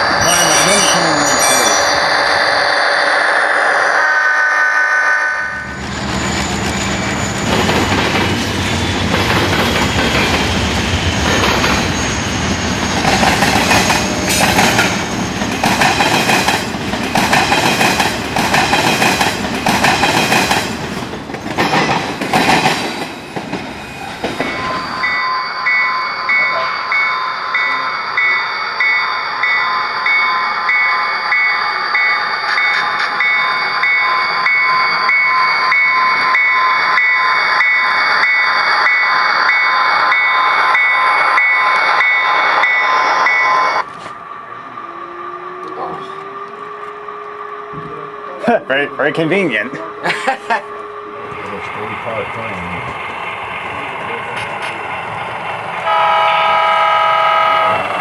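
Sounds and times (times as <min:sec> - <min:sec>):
passenger train high whine: 0:00.0 - 0:58.0
train wheels clacking over joints: 0:06.6 - 0:11.9, 0:12.9 - 0:24.6.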